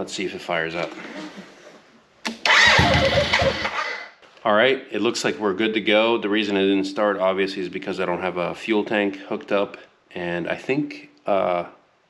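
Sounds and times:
motorcycle starter cranking engine: 2.3 - 4.1.

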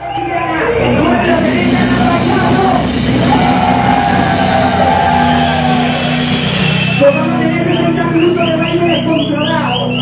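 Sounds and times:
live funk band playing: 0.0 - 10.0
steady low bass: 0.0 - 10.0.

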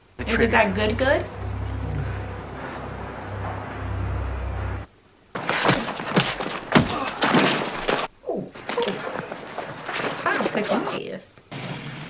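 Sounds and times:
steady low hum: 0.0 - 6.9
rapid thuds and knocks: 5.4 - 10.6.

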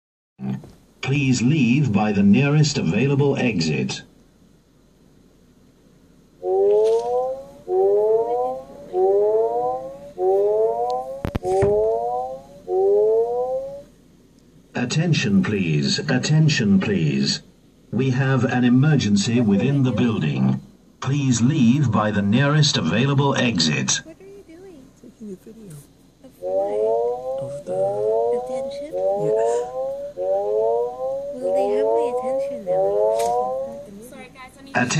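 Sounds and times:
fire alarm whoops: 6.4 - 13.9, 26.4 - 34.0.

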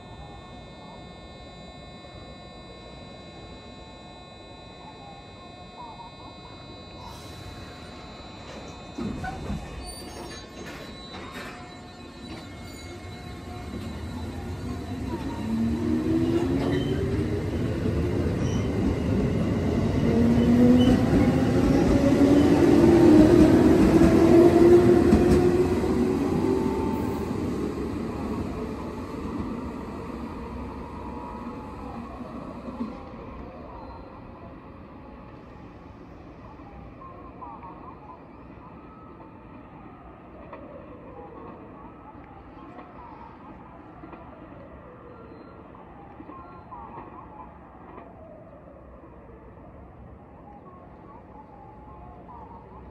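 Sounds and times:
electric train motor whine: 0.0 - 33.3.

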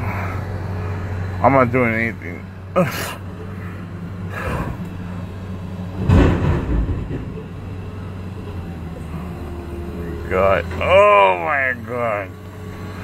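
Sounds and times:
car engine hum inside cabin: 0.0 - 13.0
man breathing in pain: 2.9 - 4.9.

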